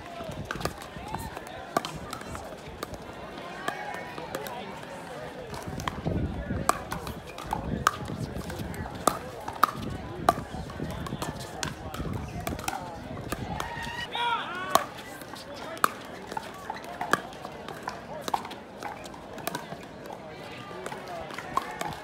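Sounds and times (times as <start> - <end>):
voices: 0.0 - 22.0
paddles striking plastic ball: 6.6 - 13.7.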